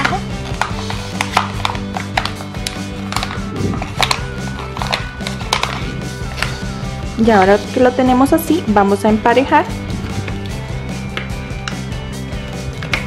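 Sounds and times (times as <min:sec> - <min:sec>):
plastic bottle crackling: 0:00.0 - 0:06.9
background instrumental music: 0:00.0 - 0:13.0.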